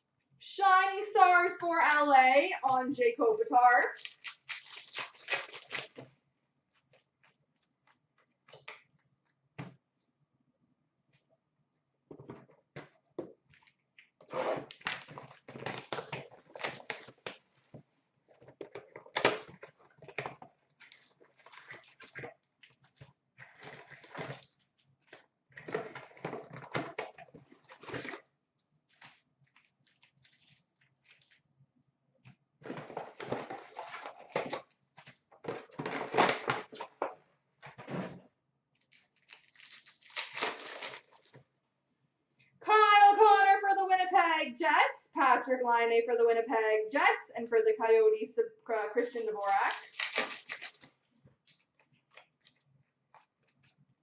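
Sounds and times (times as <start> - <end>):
wrapper crinkling: 3.9 - 6.1, 20.8 - 25.2, 28.9 - 31.4, 38.8 - 41.4, 49.4 - 53.8.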